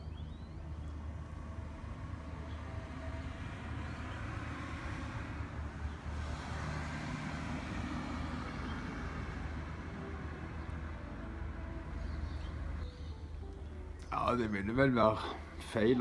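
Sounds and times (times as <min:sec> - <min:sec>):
low rumble of road traffic: 0:00.0 - 0:16.0
vehicle passing: 0:00.7 - 0:13.5.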